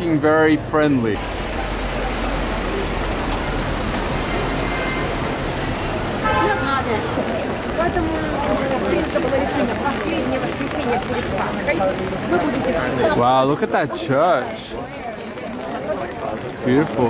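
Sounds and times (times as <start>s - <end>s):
passers-by voices: 0.0s - 17.0s
rain on wet paving: 1.1s - 17.0s.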